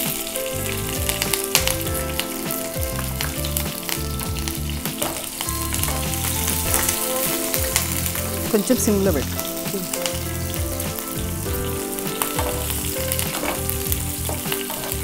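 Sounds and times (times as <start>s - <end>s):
food sizzling in hot oil: 0.0s - 15.0s.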